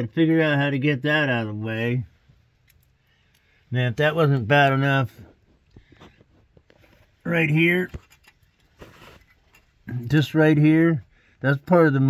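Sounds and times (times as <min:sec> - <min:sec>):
faint clicks and ticks: 0:02.5 - 0:03.6.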